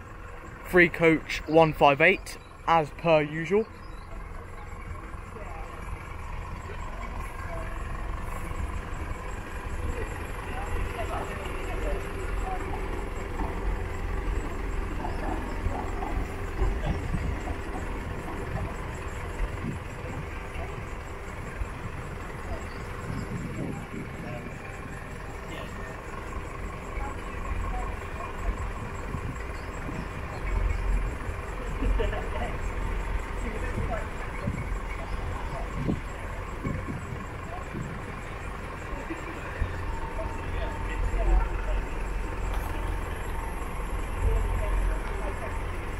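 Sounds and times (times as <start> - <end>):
diesel train engine running: 0.0 - 45.9
wind rumbling on microphone: 16.6 - 20.8, 21.7 - 25.2, 28.8 - 30.8, 33.7 - 38.2.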